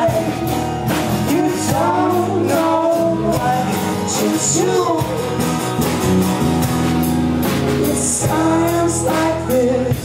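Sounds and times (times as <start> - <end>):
person singing: 0.0 - 5.5, 7.7 - 10.0
acoustic guitar strumming: 0.0 - 10.0
drums: 0.0 - 10.0.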